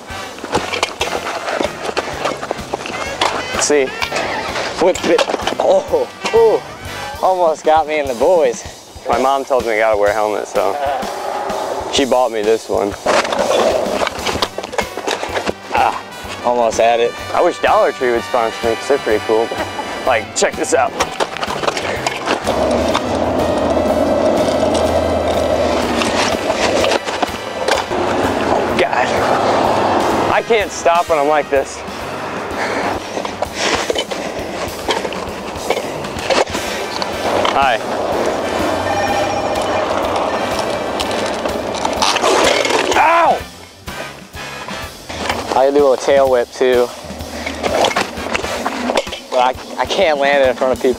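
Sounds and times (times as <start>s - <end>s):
background music: 0.0s - 50.9s
scooter wheels clattering on asphalt: 0.0s - 50.9s
person calling out: 42.9s - 43.5s.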